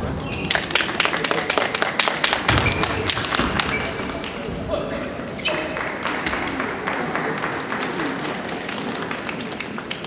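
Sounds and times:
brief squeaks: 2.5s - 4.1s.

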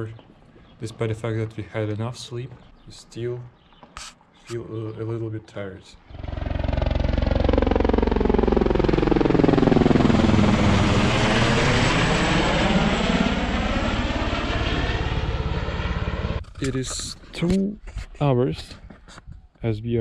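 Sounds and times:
helicopter rotor chop: 6.0s - 17.3s.

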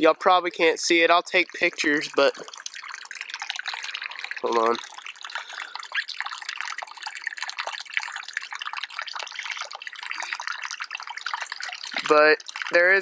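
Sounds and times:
creek water trickling: 0.0s - 13.0s.

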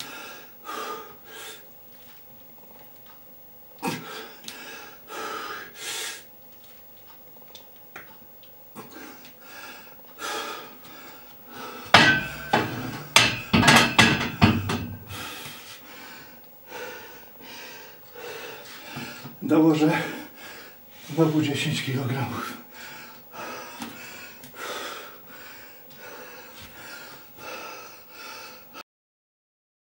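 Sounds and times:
heavy exhalations: 8.8s - 21.2s
weight plates clanking: 12.0s - 15.1s.

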